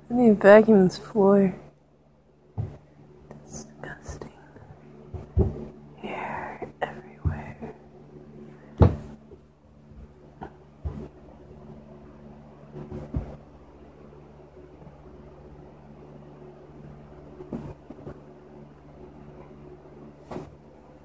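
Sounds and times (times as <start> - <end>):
steady low hum: 0.0 - 21.0
knocks and thumps: 2.5 - 2.9, 5.1 - 5.8, 8.8 - 11.2, 12.8 - 13.5, 17.5 - 18.2.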